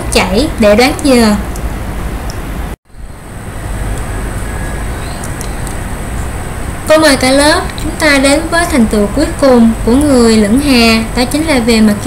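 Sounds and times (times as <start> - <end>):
woman speaking: 0.0 - 1.5, 6.9 - 12.0
low rumble with hiss: 0.0 - 12.0.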